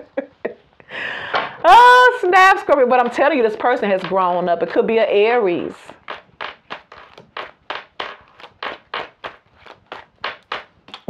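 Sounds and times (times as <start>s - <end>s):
cards being shuffled: 3.0s - 11.0s.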